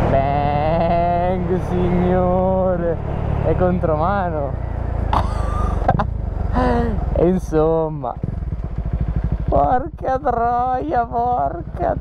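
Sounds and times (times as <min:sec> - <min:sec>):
motorcycle engine running: 0:00.0 - 0:12.0
man vocalizing: 0:00.1 - 0:02.4, 0:05.2 - 0:06.0, 0:06.6 - 0:07.8, 0:09.5 - 0:12.0.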